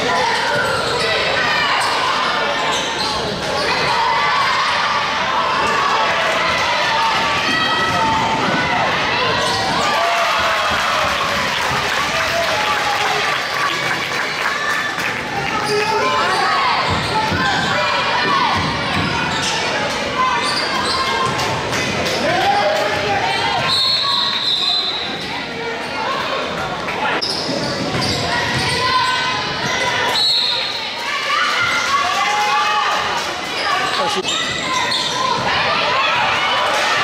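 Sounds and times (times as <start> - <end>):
sneakers squeaking: 0.0 - 3.9, 9.2 - 9.9, 15.5 - 21.5, 27.1 - 31.0, 33.5 - 36.1.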